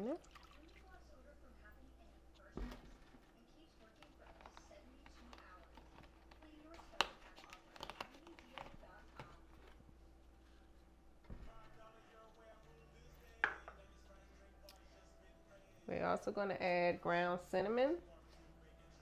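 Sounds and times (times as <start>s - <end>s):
liquid pouring into a bowl: 0.0s - 1.1s
faint kitchen sounds: 0.0s - 19.0s.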